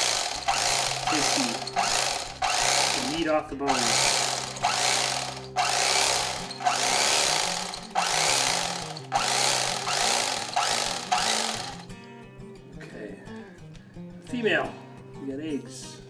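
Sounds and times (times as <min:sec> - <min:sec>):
electric knife blades rasping: 0:00.0 - 0:11.9
electric knife motor hum: 0:00.0 - 0:11.9.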